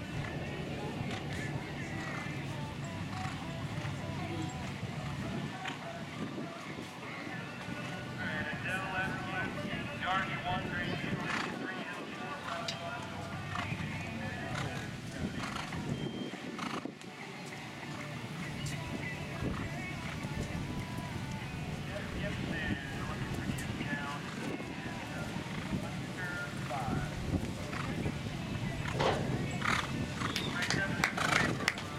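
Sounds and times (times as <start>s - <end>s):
horse cantering on sand: 0.0s - 31.9s
horse hoofbeats on sand: 25.4s - 31.9s.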